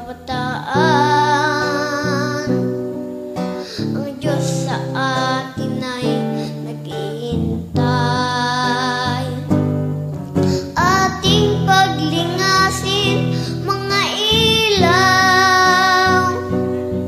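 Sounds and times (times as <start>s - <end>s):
person singing high: 0.0s - 2.7s, 3.8s - 9.5s, 10.6s - 16.8s
plucked acoustic guitar: 0.0s - 17.0s.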